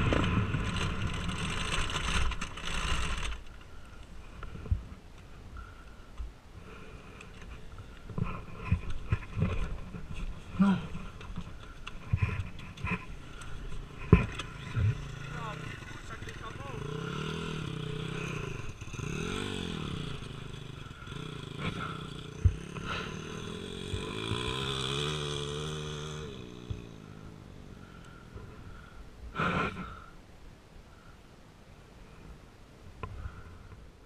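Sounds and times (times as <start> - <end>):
distant dirt bike engine revving: 0.0 - 3.8, 8.2 - 30.0.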